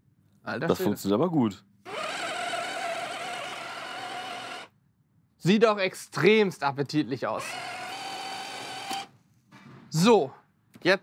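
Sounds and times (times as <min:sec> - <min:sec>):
food chopper motor whine: 0:01.9 - 0:04.7, 0:07.4 - 0:09.1.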